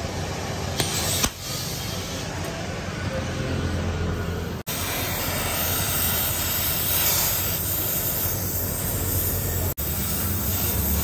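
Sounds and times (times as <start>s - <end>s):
welding torch flame hissing: 0.6s - 2.4s, 4.7s - 11.0s.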